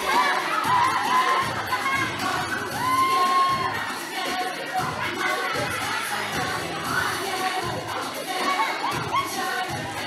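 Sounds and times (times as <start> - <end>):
children cheering and shouting: 0.0 - 10.0
recorded music: 0.0 - 10.0.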